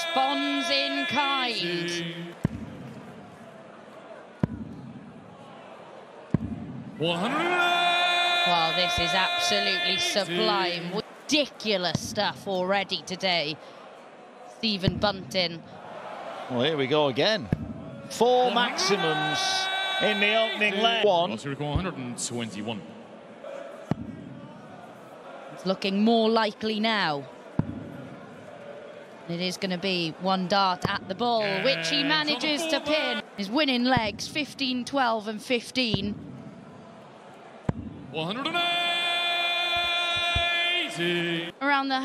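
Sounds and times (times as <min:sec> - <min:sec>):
crowd murmur: 0:23.1 - 0:33.8.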